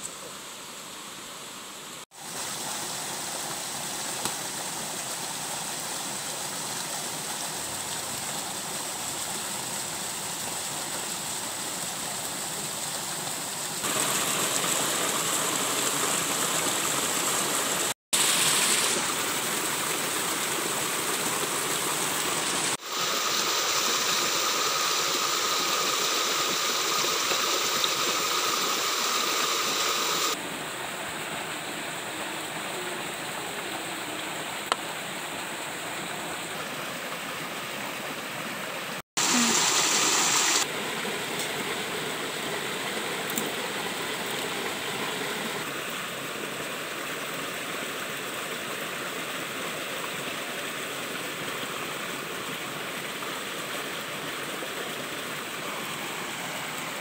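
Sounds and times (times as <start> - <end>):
stream water running over rocks: 0.0 - 57.0.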